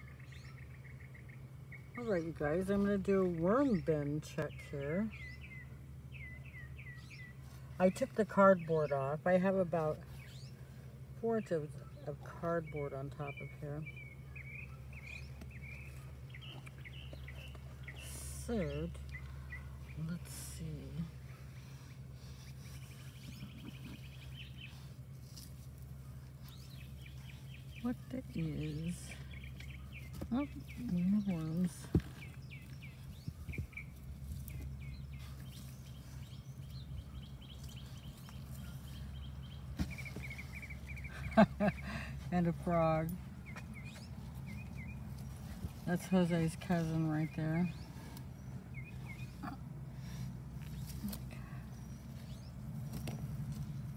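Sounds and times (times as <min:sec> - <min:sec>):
small birds chirping: 0:00.0 - 0:53.9
steady low hum: 0:00.0 - 0:53.9.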